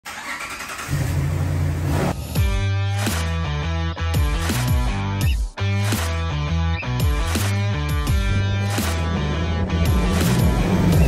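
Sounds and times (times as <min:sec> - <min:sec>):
car engine starting and rumbling: 0:00.0 - 0:02.5, 0:08.1 - 0:11.0.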